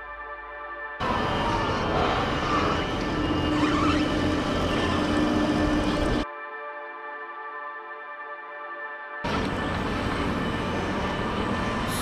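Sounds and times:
vehicle engines running: 1.0 - 6.2, 9.2 - 12.0.

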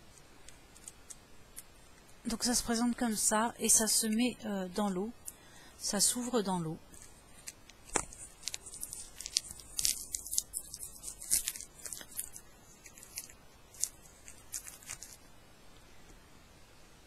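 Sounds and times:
packaging crackling: 0.4 - 2.1, 6.8 - 15.3.

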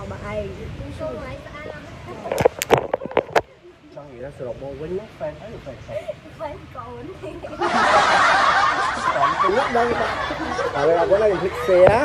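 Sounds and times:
woman laughing: 7.1 - 11.4
man laughing: 7.4 - 12.0.

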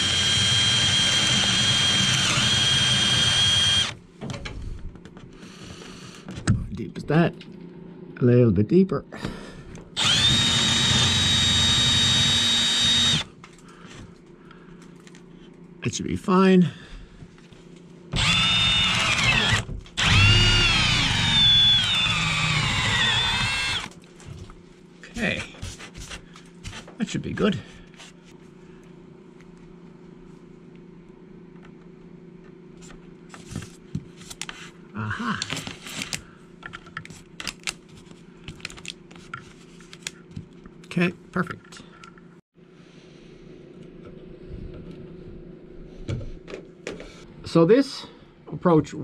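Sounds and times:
cordless drill boring wood: 0.0 - 4.0, 10.0 - 13.3, 18.2 - 23.9.

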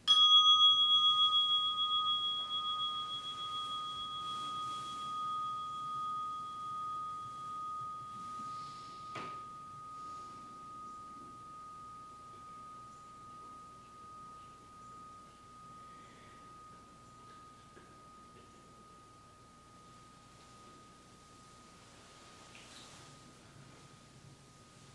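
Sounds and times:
meditation bell ringing: 0.0 - 24.9.

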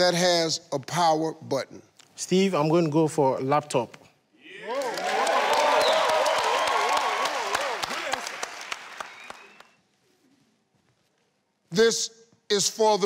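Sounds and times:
people cheering: 4.4 - 9.8
studio audience applauding: 4.5 - 9.8.

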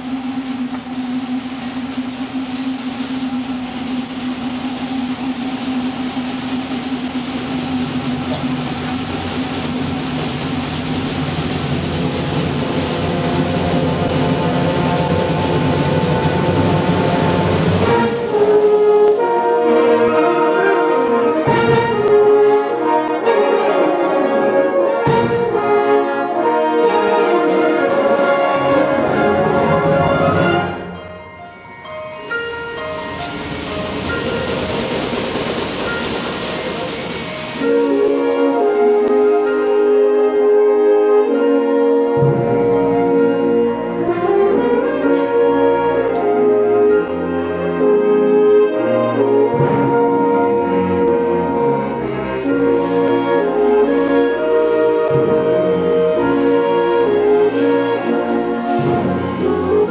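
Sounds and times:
concert band playing: 0.0 - 59.9.

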